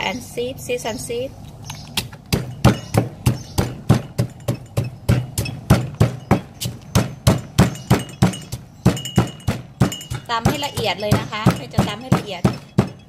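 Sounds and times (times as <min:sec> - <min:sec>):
stone pestle pounding in mortar: 0:02.0 - 0:13.0.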